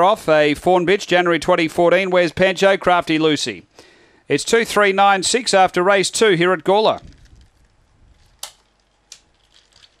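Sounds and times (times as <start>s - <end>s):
sharp clicks: 8.4s - 9.3s.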